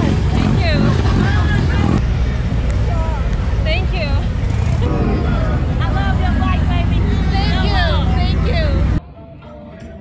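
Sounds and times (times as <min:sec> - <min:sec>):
motorcycle engine rumbling: 0:00.0 - 0:09.0
people talking and calling out: 0:00.0 - 0:10.0.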